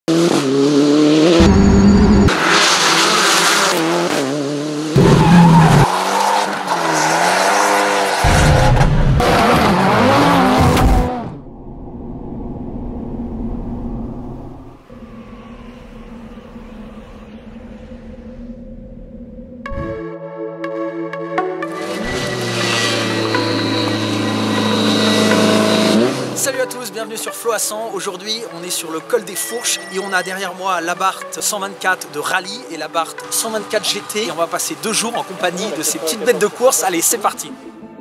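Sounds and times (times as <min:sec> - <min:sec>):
car engine revving: 0:00.1 - 0:11.5, 0:21.6 - 0:26.5.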